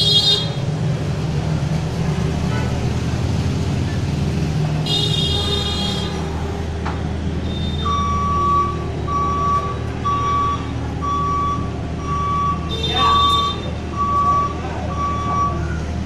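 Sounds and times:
diesel engine droning: 0:00.0 - 0:16.0
back-up alarm beeps: 0:07.7 - 0:15.8.

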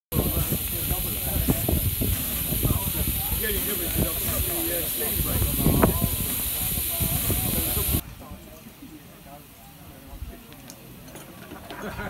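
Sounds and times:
steam hissing: 0:00.1 - 0:08.0
background voices: 0:00.1 - 0:12.0.

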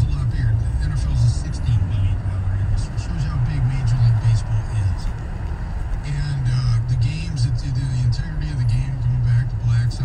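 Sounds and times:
man talking on radio: 0:00.0 - 0:05.2, 0:06.0 - 0:10.0
car cabin rumble: 0:00.0 - 0:10.0.

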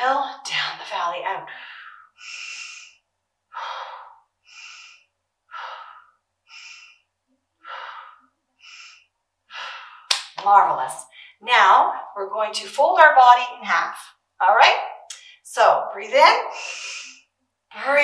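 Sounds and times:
woman breathing: 0:01.5 - 0:10.1, 0:11.0 - 0:11.4, 0:16.4 - 0:17.4.

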